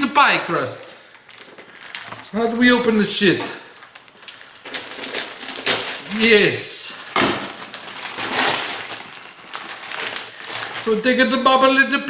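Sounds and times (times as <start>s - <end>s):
plastic bag crinkling: 0.0s - 11.7s.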